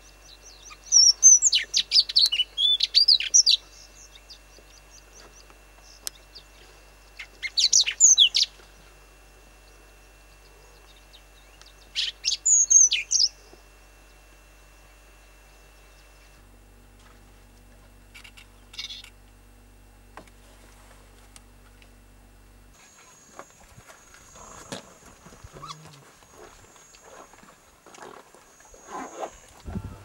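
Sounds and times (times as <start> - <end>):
lark singing chirps and whistles: 0.1 - 8.5, 10.8 - 13.4.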